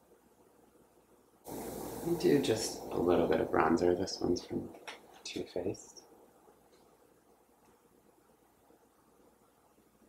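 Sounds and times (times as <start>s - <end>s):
steady room hiss: 0.0s - 10.0s.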